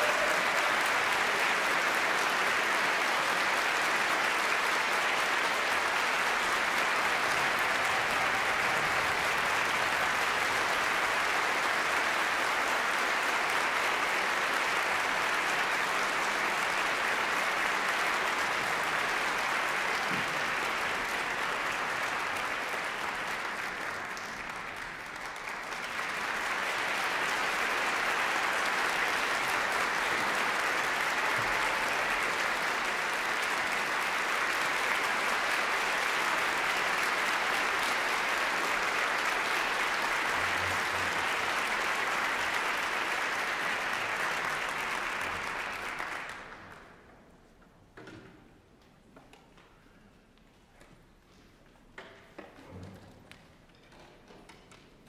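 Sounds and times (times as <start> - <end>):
audience applauding: 0.0 - 47.1.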